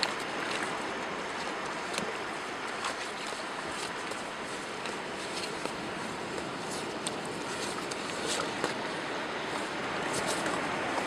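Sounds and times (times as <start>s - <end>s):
sea surf on a beach: 0.0s - 11.0s.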